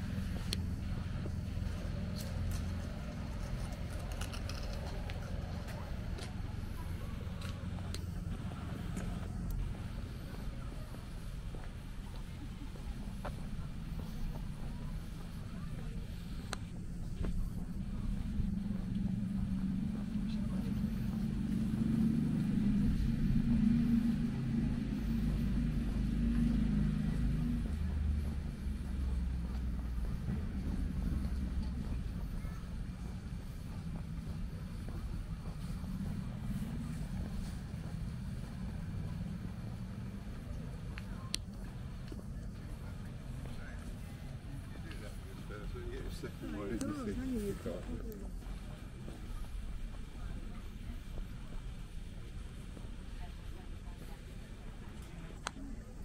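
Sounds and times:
faint voices of passers-by: 0:00.0 - 0:56.0
low outdoor rumble: 0:00.0 - 0:56.0.

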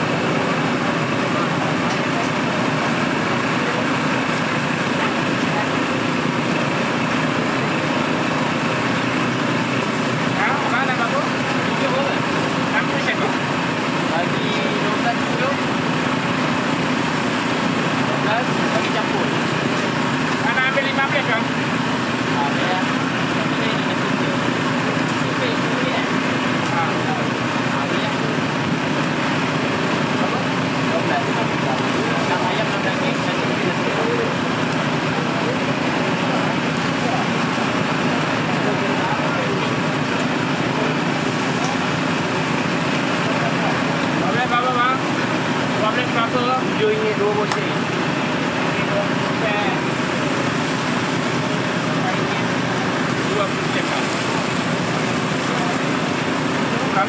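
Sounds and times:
crowd chatter: 0:00.0 - 0:57.0
skewers grilling over charcoal: 0:00.0 - 0:57.0.

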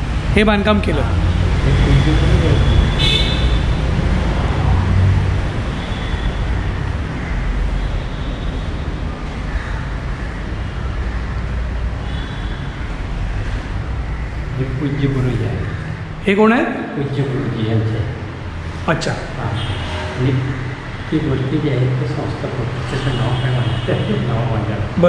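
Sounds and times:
road traffic rumble: 0:00.0 - 0:25.0
car horn toots: 0:01.7 - 0:03.8, 0:19.5 - 0:20.4, 0:22.9 - 0:24.3.

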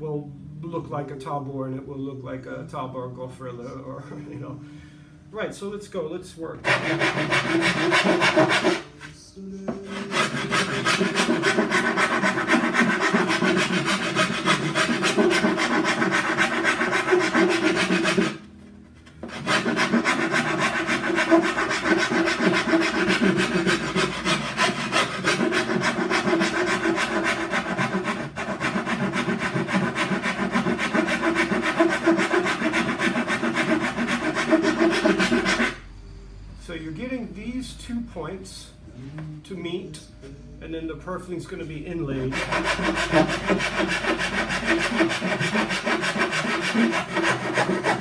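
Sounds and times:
hand file scraping wood: 0:06.6 - 0:18.4, 0:19.2 - 0:35.8, 0:42.2 - 0:48.0.

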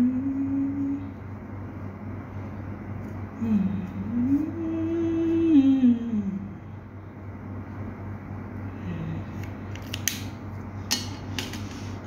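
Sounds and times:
woman humming: 0:00.0 - 0:01.2, 0:03.4 - 0:06.6, 0:08.8 - 0:09.4.

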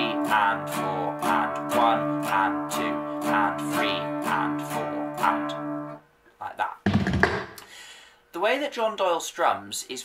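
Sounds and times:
acoustic guitar strumming: 0:00.0 - 0:06.0.

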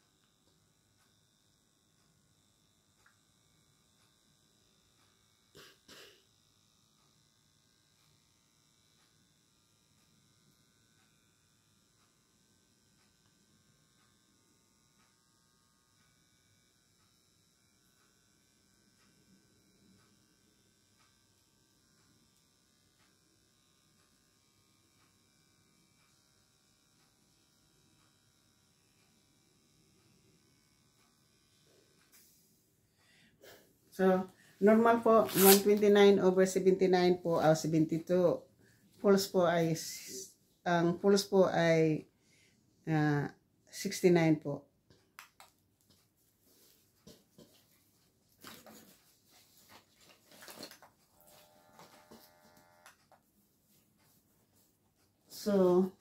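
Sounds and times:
blood pressure monitor buzz: 0:00.0 - 0:56.0.

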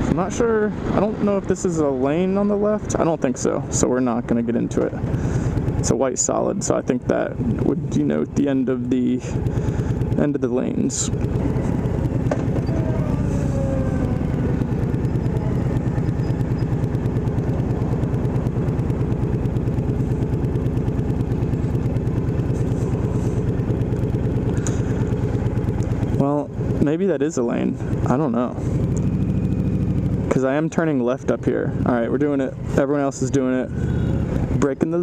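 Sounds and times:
motorcycle engine idling: 0:00.0 - 0:35.0.

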